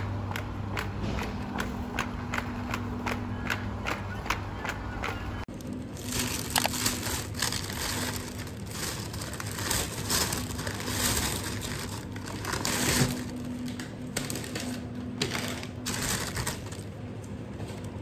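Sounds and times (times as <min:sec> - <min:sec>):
plastic bags rustling: 0:05.5 - 0:18.0.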